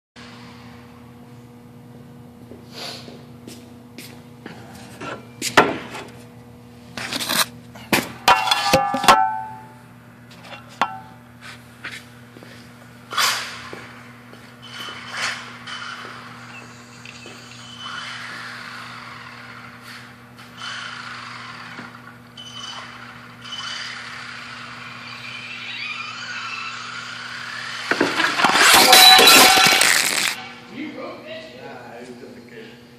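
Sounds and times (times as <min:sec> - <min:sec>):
radio-controlled car whining: 0:14.6 - 0:30.4
toy car crashing and clattering: 0:26.1 - 0:30.5.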